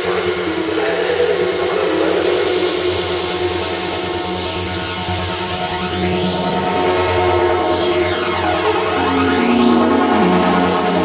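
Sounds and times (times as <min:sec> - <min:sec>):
held synth notes: 0:00.0 - 0:11.0
low drone: 0:00.0 - 0:11.0
white-noise sweep: 0:00.0 - 0:11.0.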